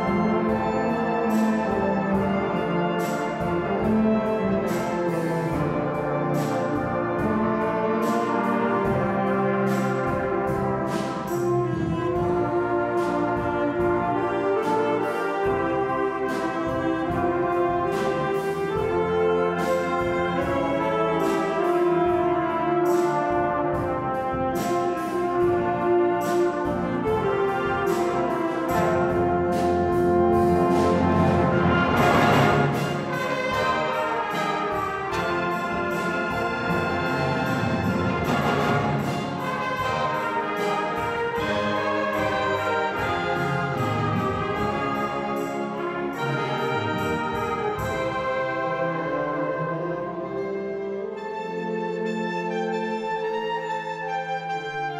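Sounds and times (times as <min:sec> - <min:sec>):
percussion strokes: 0:00.0 - 0:49.2
flugelhorn solo: 0:00.0 - 0:54.9
wind band playing: 0:00.0 - 0:54.9.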